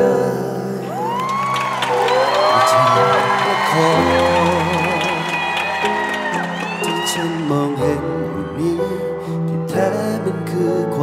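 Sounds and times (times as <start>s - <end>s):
live piano ballad: 0.0s - 11.0s
long whoops: 0.8s - 8.6s.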